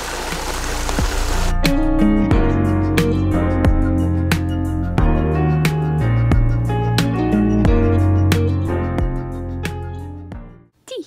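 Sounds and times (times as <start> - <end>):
rain hissing: 0.0 - 1.6.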